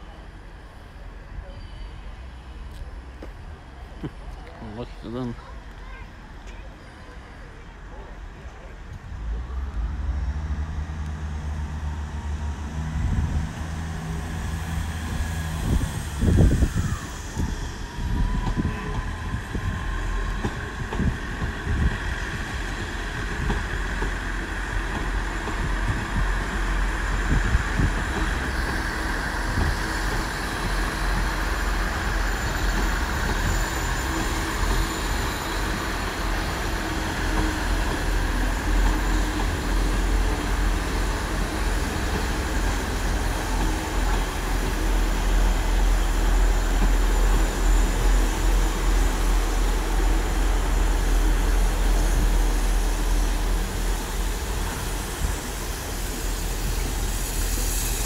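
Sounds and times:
steam locomotive rumble and beats: 0:00.0 - 0:58.0
steam hiss: 0:13.7 - 0:58.0.

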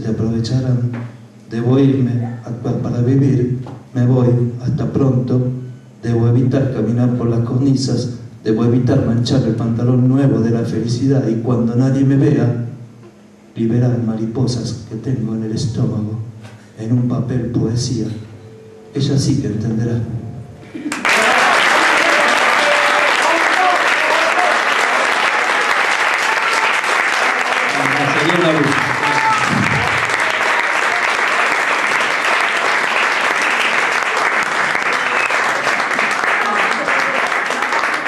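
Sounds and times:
audience applauding: 0:20.8 - 0:38.0.

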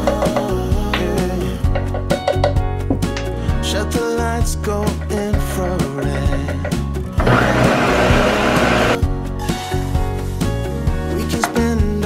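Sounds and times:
background music with a beat: 0:00.0 - 0:12.0
countertop blender running: 0:07.2 - 0:09.0.

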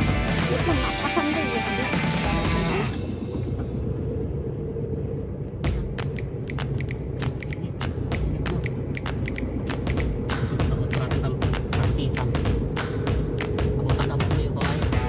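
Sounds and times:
road noise inside cabin: 0:00.0 - 0:15.0
van engine rumble: 0:00.0 - 0:15.0
sharp irregular clicks: 0:05.7 - 0:13.6.

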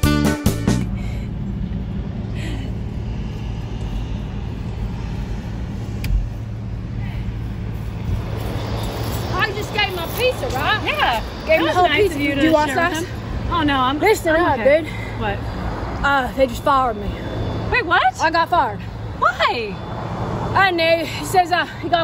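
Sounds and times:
background music: 0:00.0 - 0:01.0
road traffic rumble: 0:00.0 - 0:22.0
woman talking: 0:09.3 - 0:15.4, 0:17.7 - 0:19.8.

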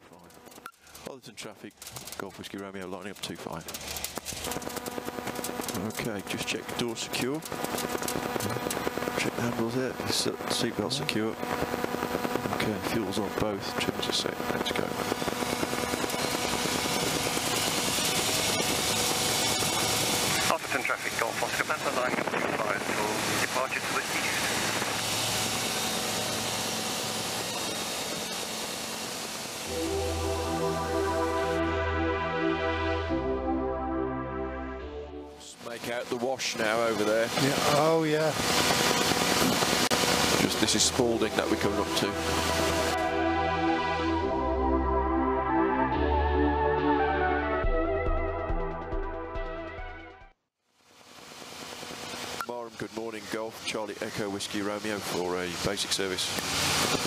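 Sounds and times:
aircraft engine running: 0:00.1 - 0:50.4
propeller and wind noise: 0:03.0 - 0:30.0, 0:36.0 - 0:43.1, 0:55.0 - 0:57.0
music: 0:29.7 - 0:35.7, 0:40.6 - 0:50.4.

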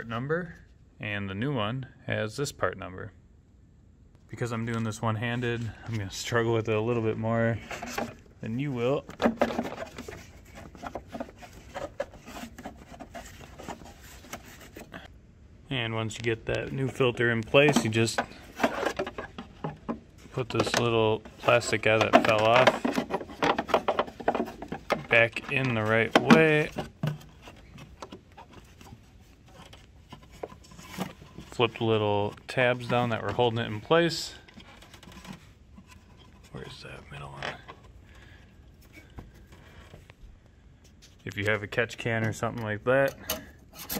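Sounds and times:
filter rubbing against plastic housing: 0:06.8 - 0:15.1, 0:16.4 - 0:38.1.

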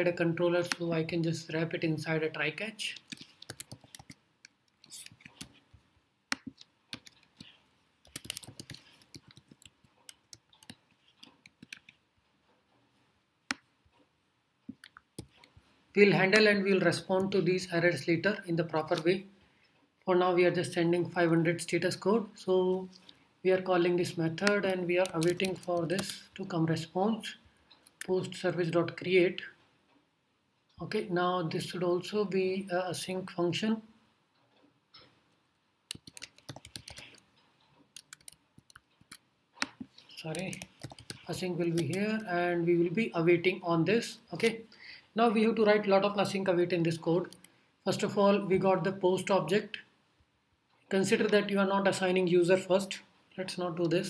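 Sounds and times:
computer keyboard typing: 0:02.9 - 0:05.6, 0:06.3 - 0:12.0, 0:14.7 - 0:15.5, 0:24.3 - 0:26.3, 0:35.9 - 0:37.3, 0:37.9 - 0:42.3, 0:47.2 - 0:47.5.

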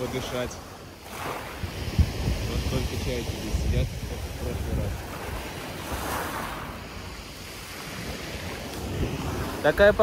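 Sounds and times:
water washing against pier: 0:00.0 - 0:10.0
wind rumbling on microphone: 0:00.0 - 0:10.0.

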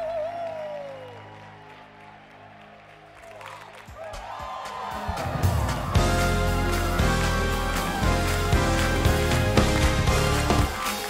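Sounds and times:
choir clapping: 0:00.0 - 0:11.0
church band sustained chords: 0:06.0 - 0:11.0.

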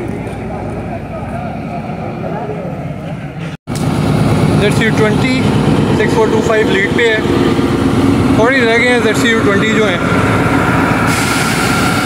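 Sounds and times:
murmur of voices: 0:00.0 - 0:03.4
diesel locomotive idling: 0:00.0 - 0:12.0.

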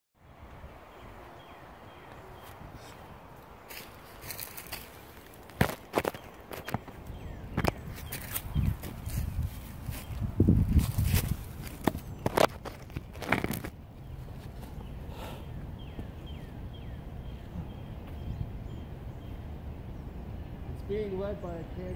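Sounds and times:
footsteps crunching on gravel and leaves: 0:03.6 - 0:07.0, 0:07.6 - 0:14.8.

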